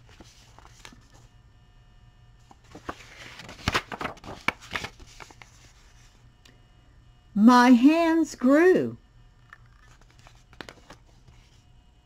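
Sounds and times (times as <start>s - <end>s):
paper page turning: 0.0s - 1.3s, 2.5s - 6.2s, 9.5s - 11.6s.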